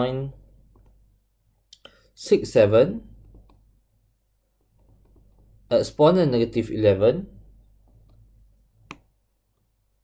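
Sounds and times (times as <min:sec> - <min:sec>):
person speaking: 0:00.0 - 0:00.5, 0:01.6 - 0:03.7, 0:05.0 - 0:07.6
stylus tapping on screen: 0:00.7 - 0:01.0, 0:03.1 - 0:03.8, 0:04.5 - 0:05.6, 0:07.8 - 0:09.7.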